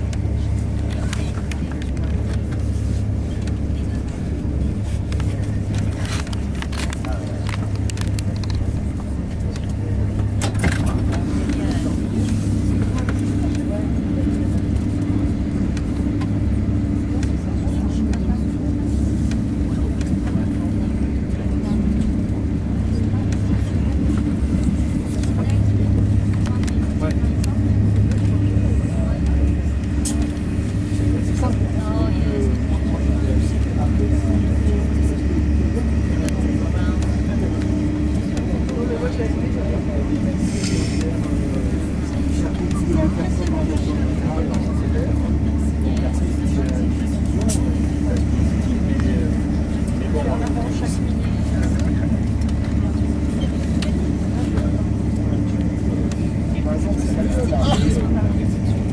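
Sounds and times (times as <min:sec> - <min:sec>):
train rumbling at speed: 0:00.0 - 0:58.9.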